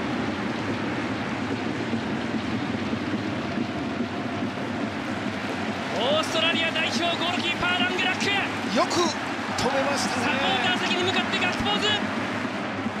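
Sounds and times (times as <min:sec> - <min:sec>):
stadium crowd roar: 0:00.0 - 0:13.0.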